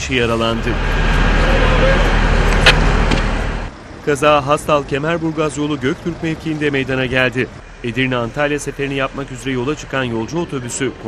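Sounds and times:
outdoor noise: 0.0 - 11.0
vehicle engine running: 0.0 - 11.0.

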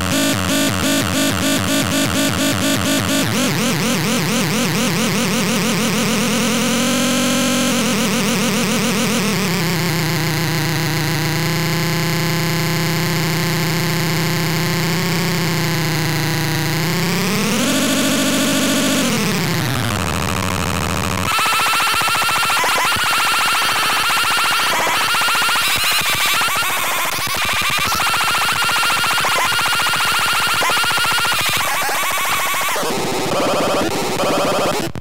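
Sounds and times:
buzzy electronic drone: 0.0 - 34.9.

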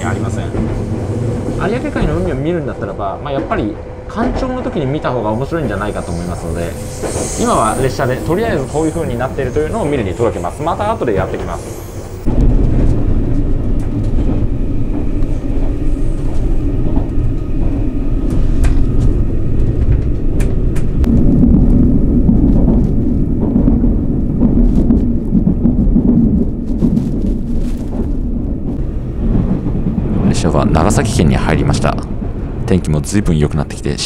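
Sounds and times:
train carriage rumble: 0.0 - 34.0.

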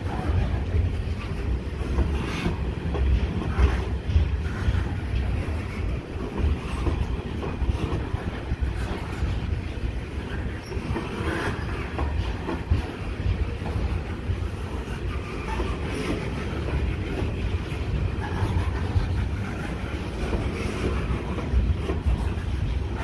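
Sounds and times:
freight train wheels rumbling on rail: 0.0 - 23.0.

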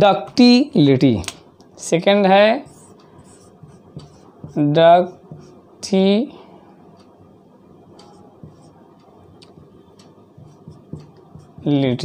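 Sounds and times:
man speaking: 0.0 - 2.9, 11.6 - 12.0
marker scratching on whiteboard: 2.6 - 5.6, 8.0 - 8.9, 9.5 - 12.0.

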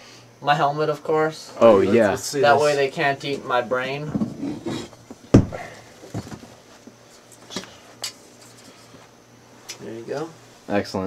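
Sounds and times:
objects knocking and bumping: 4.1 - 7.7.

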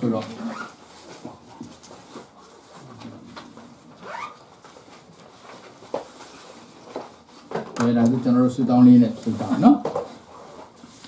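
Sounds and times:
soft clicks and rustles: 0.0 - 8.2.

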